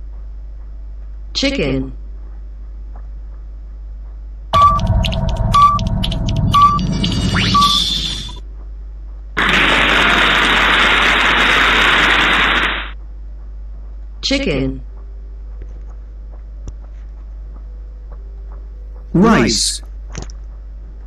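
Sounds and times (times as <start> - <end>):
short countdown beeps: 4.6 - 8.1
rising whistle: 4.6 - 8.4
steady band of noise: 9.4 - 13.0.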